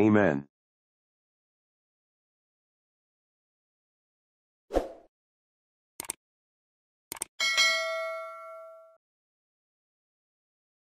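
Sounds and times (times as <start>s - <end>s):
notification bell ding: 7.4s - 9.0s.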